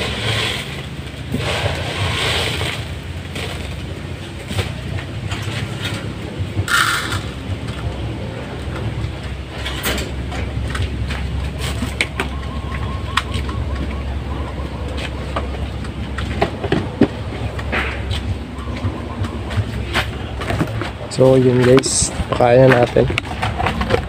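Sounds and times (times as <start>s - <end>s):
feeders scraping and knocking: 0.0s - 14.0s, 14.8s - 24.0s
steady low rumble: 0.0s - 24.0s.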